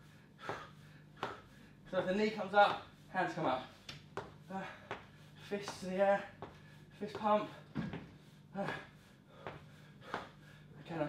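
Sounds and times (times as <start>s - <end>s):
man breathing sharply: 0.0s - 1.9s, 6.4s - 10.8s.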